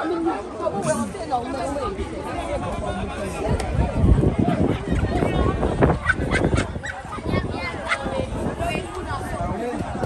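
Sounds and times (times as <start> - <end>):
crowd chatter and exclamations: 0.0 - 10.0.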